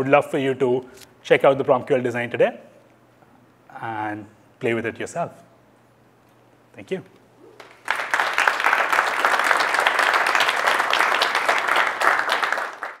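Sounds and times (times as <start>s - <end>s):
audience applauding: 7.6s - 13.0s.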